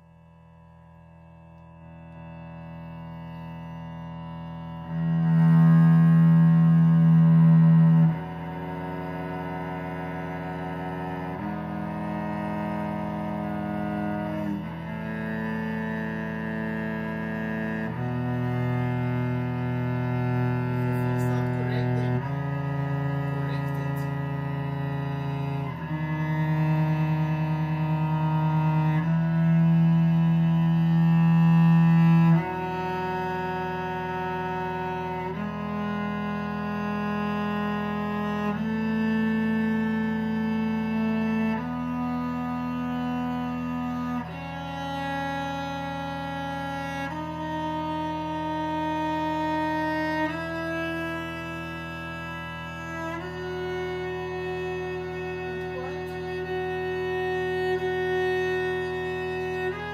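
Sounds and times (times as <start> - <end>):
cello bowed notes: 0.0 - 59.9
steady sustained drone: 1.8 - 37.7.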